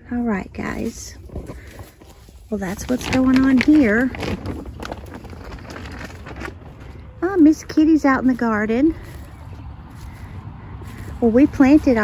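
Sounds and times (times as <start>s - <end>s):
rustling on grass: 0.1s - 12.0s.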